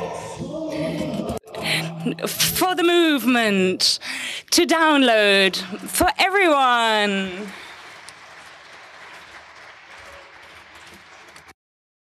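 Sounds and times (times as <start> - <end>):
audience applauding: 5.3 - 11.6.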